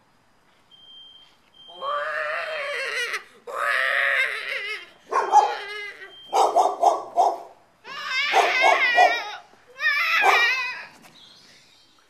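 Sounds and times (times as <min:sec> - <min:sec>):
teenager wailing: 0:01.7 - 0:06.2, 0:07.8 - 0:11.0.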